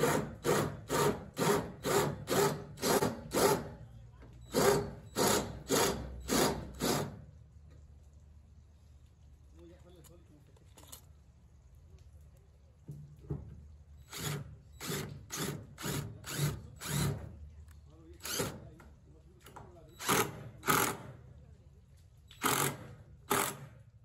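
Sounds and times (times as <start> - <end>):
cordless drill driving screws: 0.0 - 3.7, 4.5 - 7.2, 14.1 - 17.3, 18.2 - 18.7, 20.0 - 21.2, 22.4 - 23.7.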